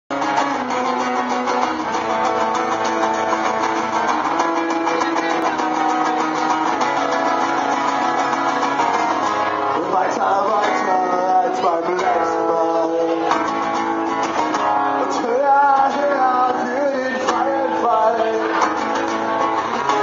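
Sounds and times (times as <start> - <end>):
acoustic guitars strumming: 0.1 - 20.0.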